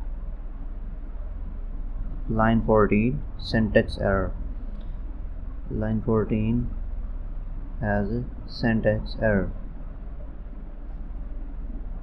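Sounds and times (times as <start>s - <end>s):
background hiss: 0.0s - 12.0s
low electrical hum: 0.0s - 12.0s.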